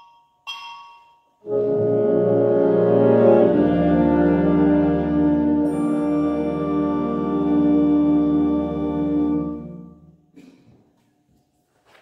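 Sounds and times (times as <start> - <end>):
mallet percussion note ringing: 0.0 - 1.3.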